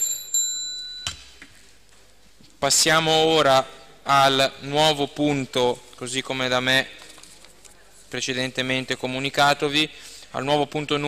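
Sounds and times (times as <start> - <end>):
desk hand bell ringing: 0.0 - 1.4.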